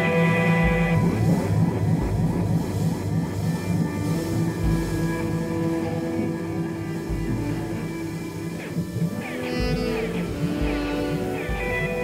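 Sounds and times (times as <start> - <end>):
low sustained drone: 0.0 - 12.0
rising pitch glides: 0.0 - 12.0.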